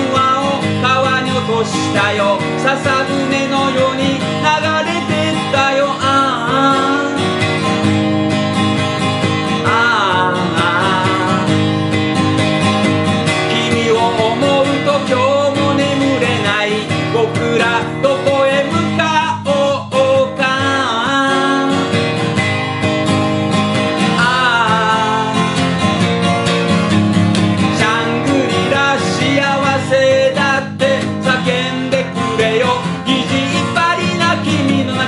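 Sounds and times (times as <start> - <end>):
man singing: 0.0 - 7.8, 9.3 - 12.0, 13.1 - 22.1, 24.0 - 26.0, 27.6 - 35.0
acoustic guitar strumming: 0.0 - 35.0.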